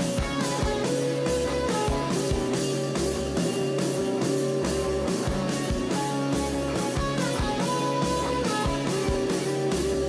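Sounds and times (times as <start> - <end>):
rock guitar: 0.0 - 10.0
steady drum beat: 0.0 - 10.0.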